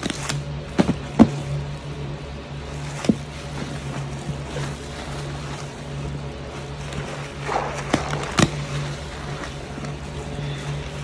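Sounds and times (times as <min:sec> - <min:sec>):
sponge squelching: 0:00.0 - 0:11.0
steady low hum: 0:00.0 - 0:11.0.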